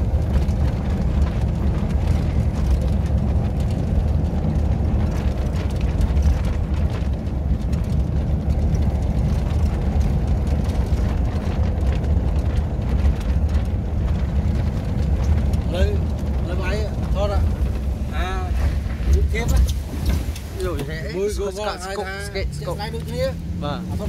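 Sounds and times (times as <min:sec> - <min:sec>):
vehicle rumble on road: 0:00.0 - 0:24.0.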